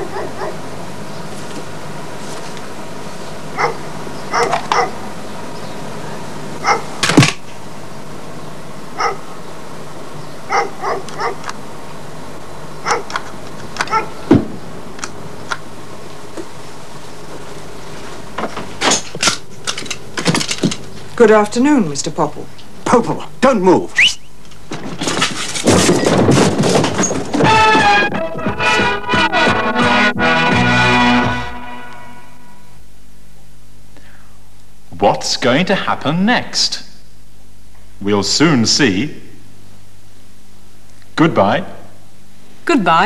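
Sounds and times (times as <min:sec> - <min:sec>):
dog barking: 0:00.0 - 0:00.6, 0:03.6 - 0:05.0, 0:06.6 - 0:07.0, 0:09.0 - 0:09.4, 0:10.5 - 0:11.5, 0:12.8 - 0:13.2, 0:13.8 - 0:14.2
boxes crashing and clattering: 0:24.7 - 0:29.8
music with held notes: 0:27.4 - 0:32.4.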